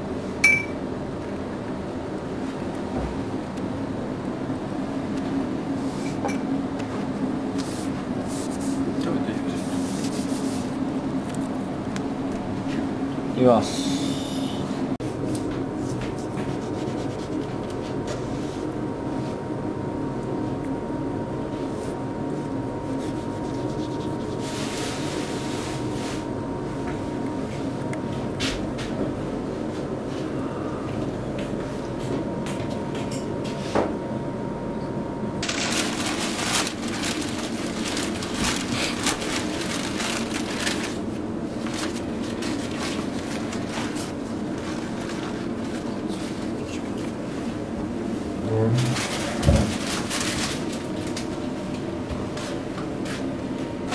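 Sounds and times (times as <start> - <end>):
background hum with high tone: 0.0 - 53.9
paper wrapping crinkling: 35.4 - 45.9, 49.0 - 51.3.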